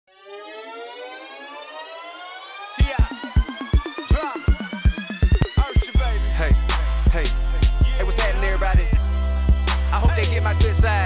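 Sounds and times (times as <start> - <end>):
buzzy synthesizer tone rising: 0.1 - 11.0.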